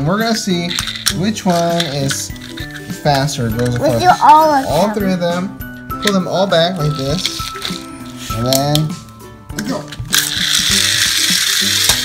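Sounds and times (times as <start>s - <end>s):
small wheels on tile floor: 0.0s - 5.0s, 9.7s - 12.0s
toy car spring motors whirring: 0.3s - 5.0s, 9.9s - 12.0s.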